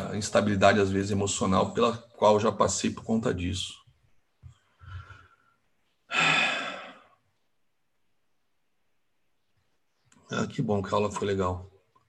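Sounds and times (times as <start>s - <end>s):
man sighing: 6.1s - 7.2s.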